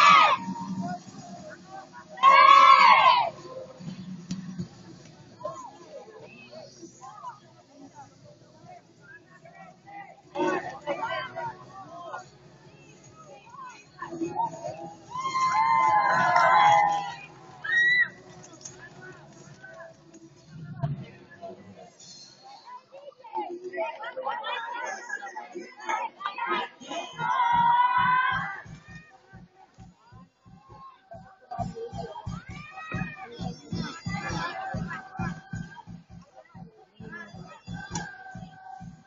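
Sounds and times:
children shouting a cheer: 0.0s - 0.5s, 2.2s - 3.4s, 15.1s - 18.2s, 26.5s - 29.0s
shrill yell: 0.0s - 0.5s, 2.2s - 3.4s, 15.1s - 18.2s
crowd murmur: 0.0s - 39.0s.

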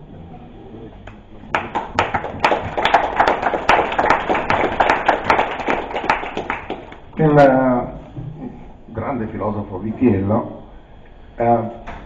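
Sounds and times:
audience applauding: 1.5s - 7.2s.

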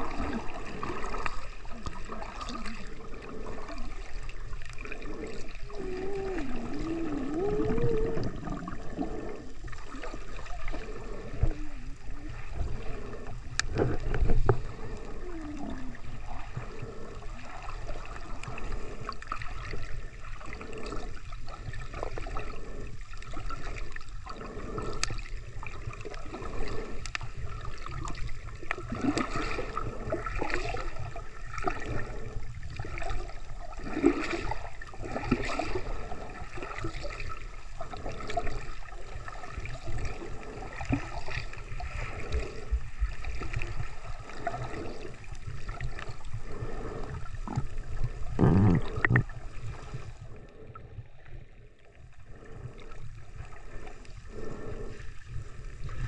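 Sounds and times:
water gurgling and sloshing: 0.0s - 56.0s.

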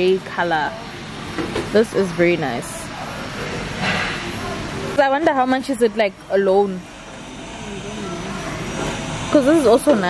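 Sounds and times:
faint voices: 1.7s - 10.0s.

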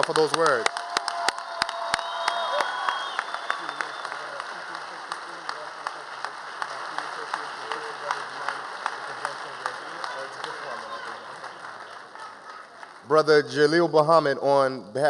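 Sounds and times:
sustained applause: 0.0s - 14.1s.

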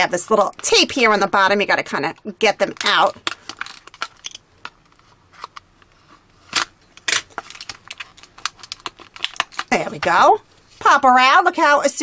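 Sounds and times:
plastic toy capsule handled: 2.8s - 5.9s, 6.5s - 9.8s.

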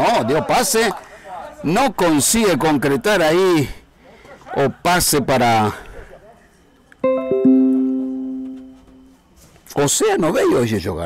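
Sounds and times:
descending piano jingle: 7.0s - 9.1s.

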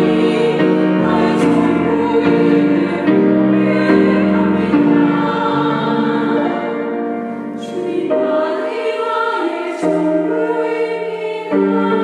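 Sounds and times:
women's choir singing: 0.0s - 12.0s.

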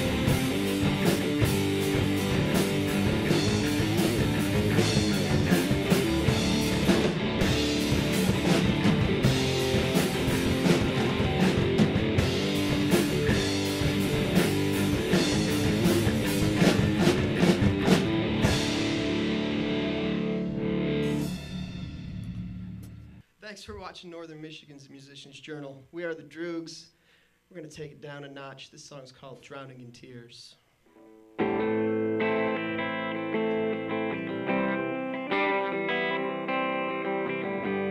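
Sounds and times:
bass guitar: 0.0s - 23.2s, 31.4s - 37.9s
electric guitar: 0.0s - 23.2s, 30.9s - 37.9s
drum kit: 0.0s - 24.0s.

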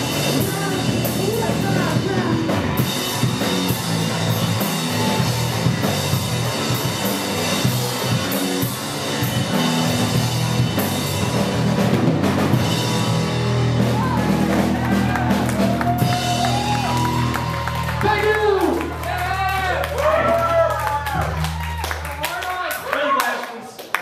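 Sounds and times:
drum kit hitting hard: 0.0s - 18.3s
distorted punk band playing: 0.0s - 22.5s.

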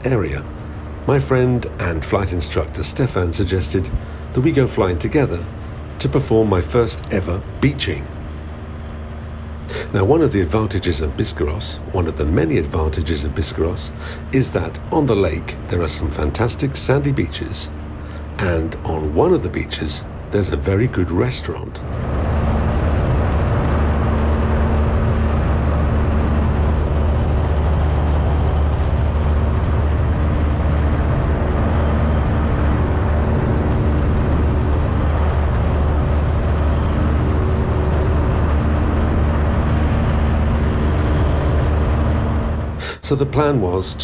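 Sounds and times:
airplane engine and propeller droning: 0.0s - 44.0s
wind noise over camera: 21.8s - 42.8s.

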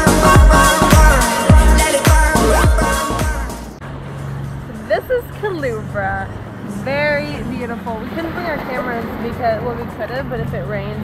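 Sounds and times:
woman talking and exclaiming: 4.8s - 11.0s.

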